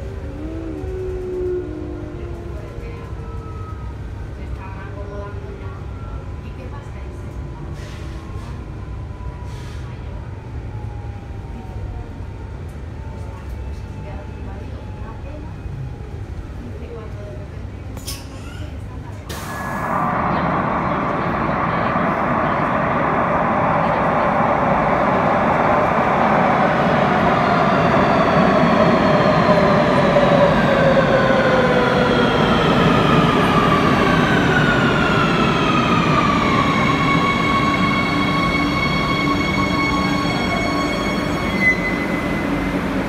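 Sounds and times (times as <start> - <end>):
electric train braking to a stop: 19.3 - 43.0.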